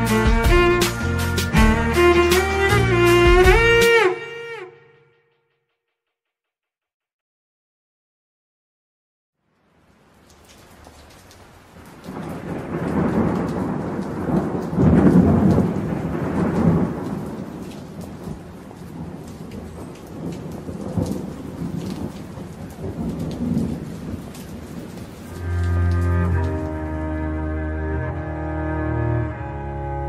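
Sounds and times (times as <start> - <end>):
rain falling: 0.0 - 4.1, 9.4 - 29.9
rain drop ticks: 10.0 - 26.8
rolling thunder: 12.0 - 25.4.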